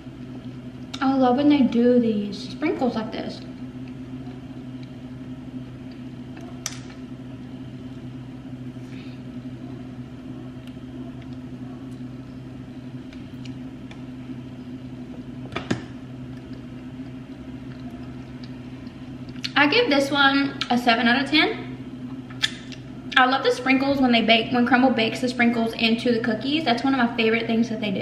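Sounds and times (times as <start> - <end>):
low electrical hum: 0.0 - 28.0.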